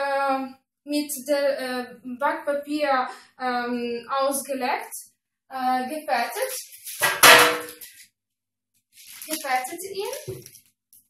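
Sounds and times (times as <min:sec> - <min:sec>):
metal baking tray clanging: 0:07.0 - 0:07.9.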